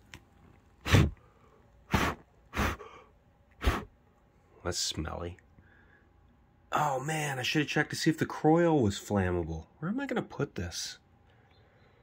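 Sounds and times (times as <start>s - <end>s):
sharp puffs of breath: 0.8s - 3.9s.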